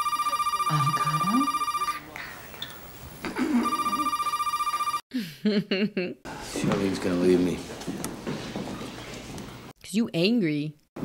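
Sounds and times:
telephone ringing: 0:00.0 - 0:02.0, 0:03.6 - 0:05.0.

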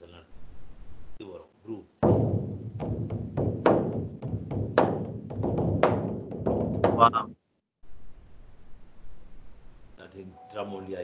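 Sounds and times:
fast drumming: 0:02.0 - 0:07.3.

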